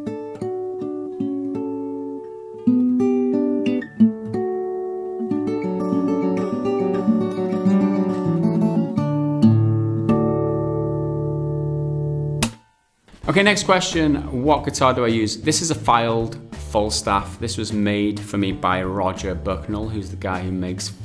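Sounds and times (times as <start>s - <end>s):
fingerpicked acoustic guitar: 0.0s - 21.0s.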